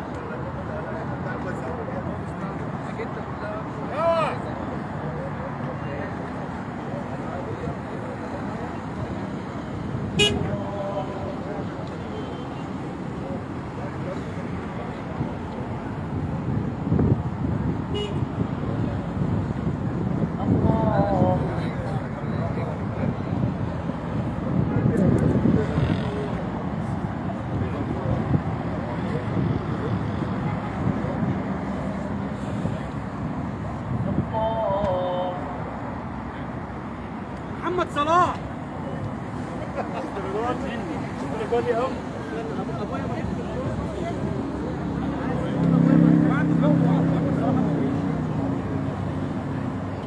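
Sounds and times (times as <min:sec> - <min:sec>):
traffic din: 0:00.0 - 0:50.0
car horn toot: 0:10.1 - 0:10.5, 0:17.9 - 0:18.3.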